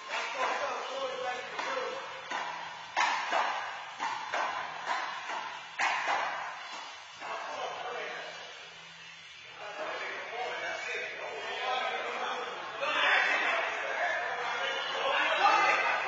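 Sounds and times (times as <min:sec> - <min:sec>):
handball smacks echoing: 0:01.5 - 0:07.3.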